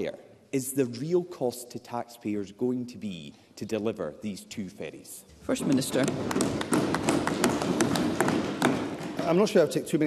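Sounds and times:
sharp taps and knocks: 5.6s - 9.6s.

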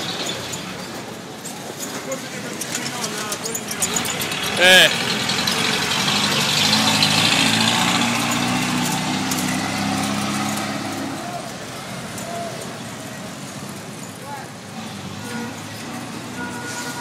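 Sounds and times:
street noise: 0.0s - 17.0s
vehicle engine running: 2.2s - 12.4s.

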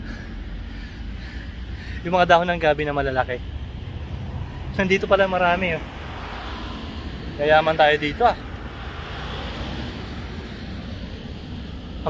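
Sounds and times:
passing vehicle rumble: 0.0s - 12.0s.

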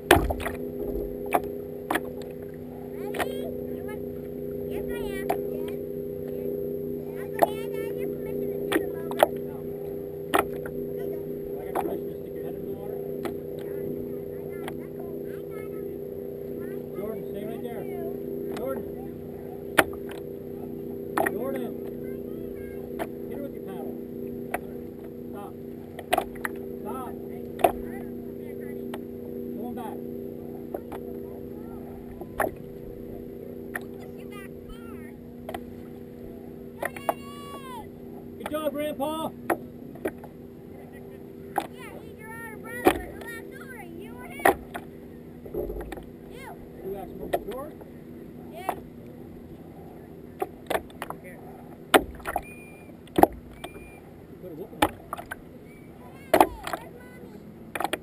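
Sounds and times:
water slapping against kayak hull: 0.0s - 3.4s, 19.7s - 20.2s, 25.9s - 26.6s, 32.1s - 34.1s, 44.4s - 46.2s, 50.4s - 54.0s, 54.8s - 55.4s, 57.7s - 58.0s
steady low hum: 0.0s - 58.0s.

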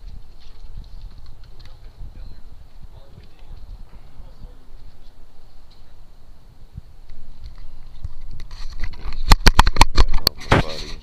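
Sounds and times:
camera knocking and rubbing: 0.0s - 2.0s, 7.1s - 11.0s.

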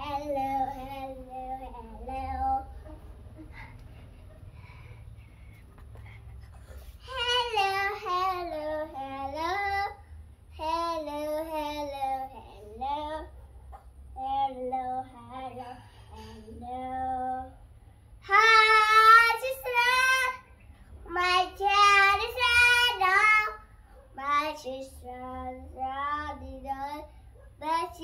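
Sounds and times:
girl singing unaccompanied: 0.0s - 3.6s, 7.0s - 13.4s, 14.0s - 28.0s.

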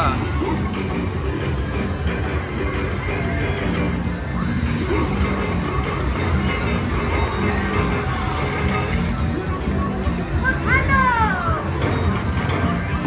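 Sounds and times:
busy casino floor noise: 0.0s - 13.0s
slot machine bonus music: 0.0s - 13.0s.

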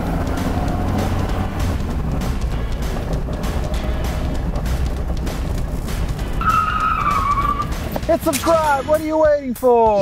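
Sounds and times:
car engine running: 0.0s - 8.3s
background music: 0.0s - 10.0s
tyre squealing: 5.6s - 8.6s.

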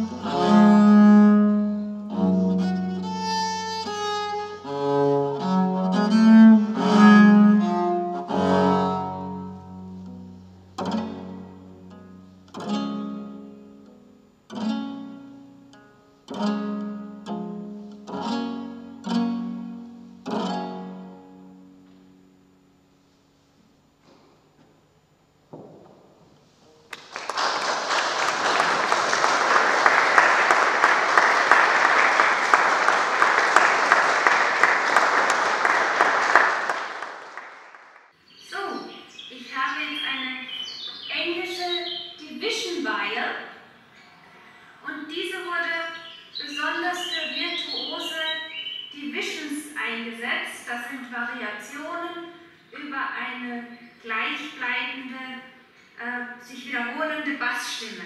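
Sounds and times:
viola da gamba bowed notes: 0.0s - 13.9s, 14.5s - 21.8s
audience applause: 26.9s - 38.1s.

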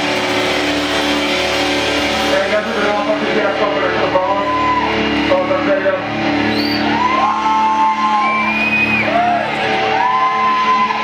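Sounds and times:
distorted electric guitar: 0.0s - 11.0s
punk rock band playing live: 0.0s - 11.0s.

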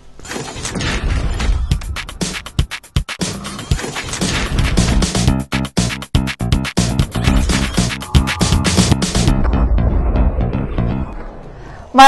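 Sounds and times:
electronic drum hits: 6.2s - 11.1s
noisy sound effect: 6.8s - 11.6s
low rumble: 7.2s - 11.8s.

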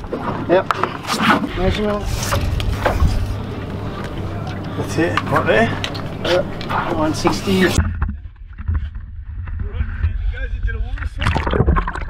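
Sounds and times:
boat engine droning: 0.0s - 8.6s.

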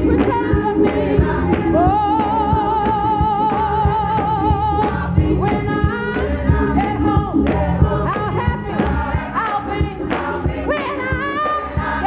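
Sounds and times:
hand-clapping on the beat: 0.0s - 5.7s, 6.8s - 12.0s
gospel choir singing: 0.0s - 12.0s.

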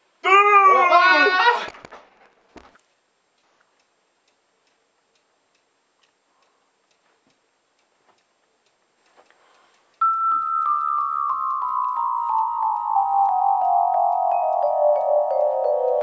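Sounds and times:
wall clock ticking: 2.8s - 16.0s.

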